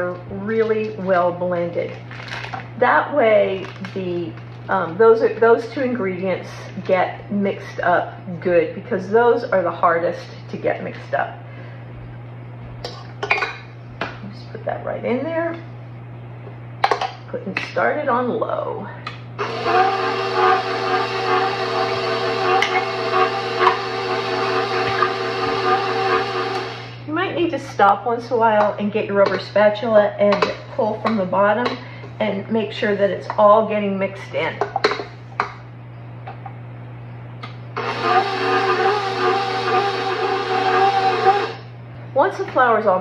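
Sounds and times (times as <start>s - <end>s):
stand mixer motor whine: 19.4s - 27.0s, 37.8s - 41.7s.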